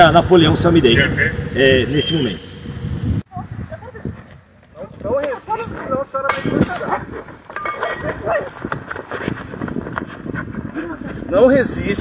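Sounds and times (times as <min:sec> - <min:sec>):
scuffle knocks and shuffling: 0:06.7 - 0:11.3.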